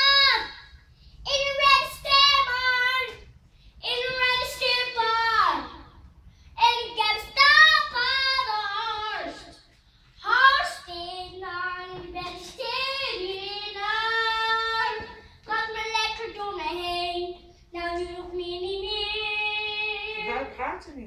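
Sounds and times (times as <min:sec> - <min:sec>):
girl singing into a microphone: 0:00.0 - 0:00.7, 0:01.3 - 0:03.2, 0:03.8 - 0:05.8, 0:06.6 - 0:20.6.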